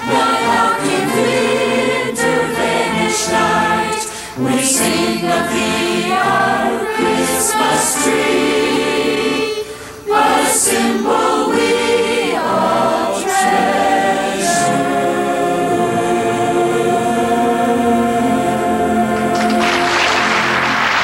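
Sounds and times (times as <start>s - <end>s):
group singing in chorus: 0.0s - 21.0s.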